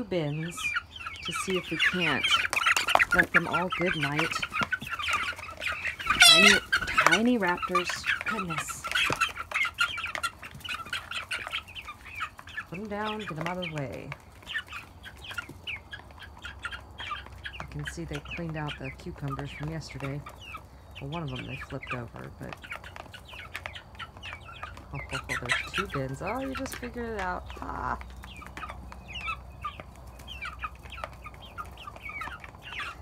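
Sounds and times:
young chickens peeping: 0:00.0 - 0:33.0.

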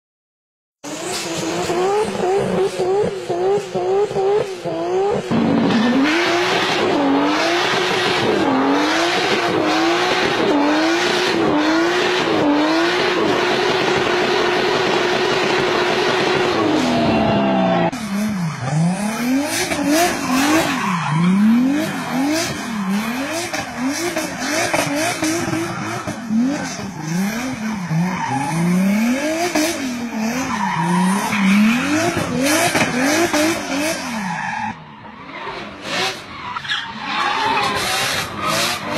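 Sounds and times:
deeper engine revs: 0:00.8 - 0:34.3
racing car engine revving: 0:00.8 - 0:38.9.

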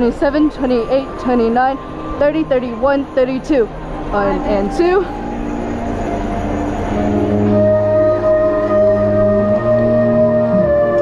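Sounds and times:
marching band holding a chord: 0:01.8 - 0:11.0.

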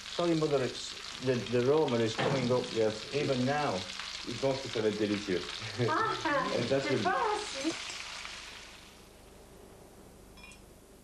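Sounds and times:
meat sizzling in a pan: 0:00.0 - 0:09.3.

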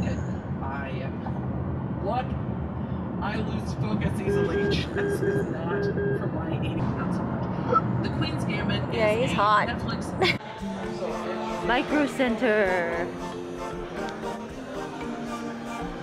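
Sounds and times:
car cabin road and engine drone: 0:00.0 - 0:10.4
electronic beeps: 0:04.3 - 0:06.3.

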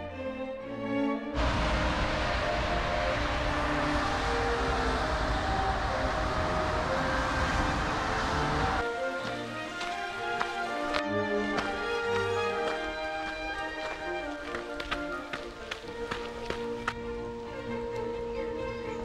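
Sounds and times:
orchestral piano music: 0:00.0 - 0:19.0
traffic on wet road: 0:01.4 - 0:18.1.

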